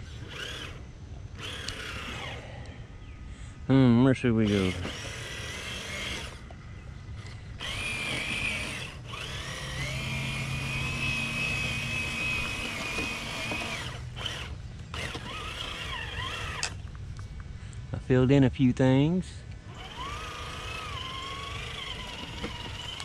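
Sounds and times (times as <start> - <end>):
toy car electric motor whining: 0.0 - 2.5, 4.4 - 6.5, 7.2 - 16.8, 19.7 - 23.0.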